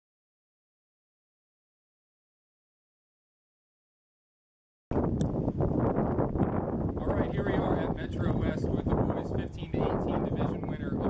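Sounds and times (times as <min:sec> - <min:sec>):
wind buffeting microphone: 0:04.9 - 0:11.0.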